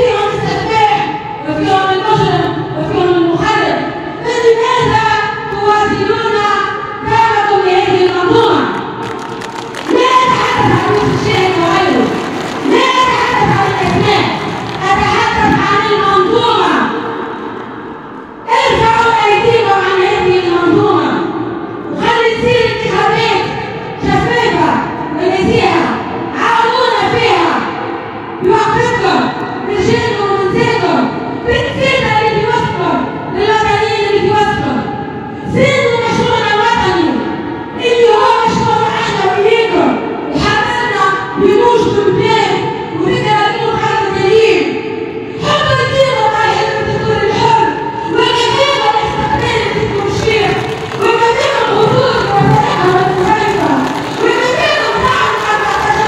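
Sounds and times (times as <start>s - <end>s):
woman speaking over loudspeakers: 0.0s - 56.0s.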